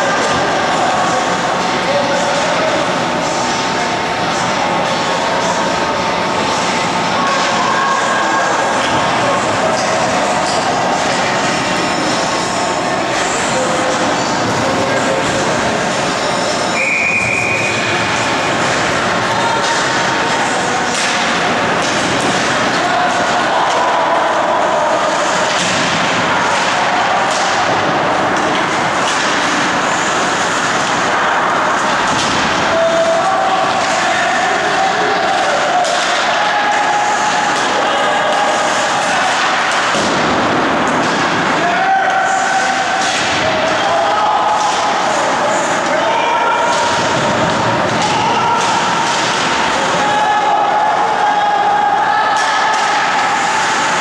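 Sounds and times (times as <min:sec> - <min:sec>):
sticks and puck clacking: 0:00.0 - 0:54.0
short high whistle: 0:16.8 - 0:17.8.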